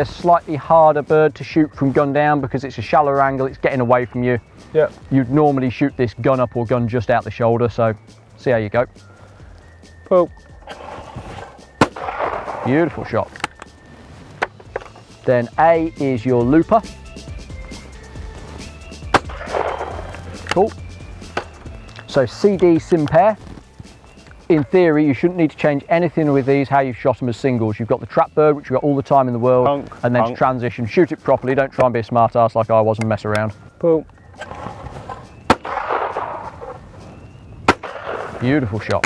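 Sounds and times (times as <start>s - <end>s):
shotgun shot with echo: 11.8s - 12.7s, 19.1s - 20.1s, 35.5s - 36.5s, 37.7s - 38.4s.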